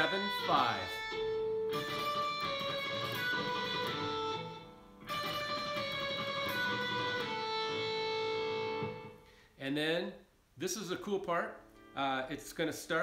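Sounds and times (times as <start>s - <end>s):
electric guitar tremolo picking: 0.0s - 9.3s.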